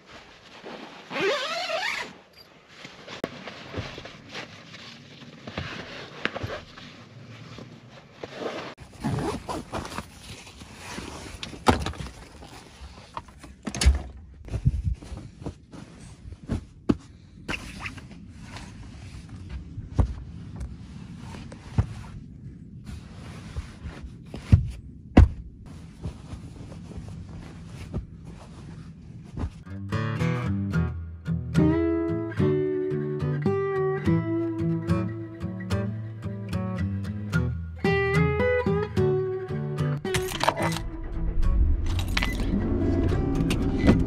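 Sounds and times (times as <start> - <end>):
fabric rustling: 0.0 - 13.1, 14.4 - 29.7
sharp knocks and thunks: 24.4 - 25.5.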